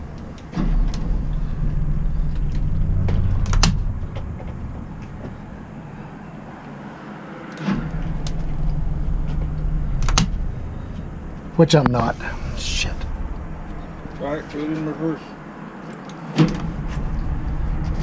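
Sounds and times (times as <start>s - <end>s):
boat engine revving: 0.0s - 15.6s.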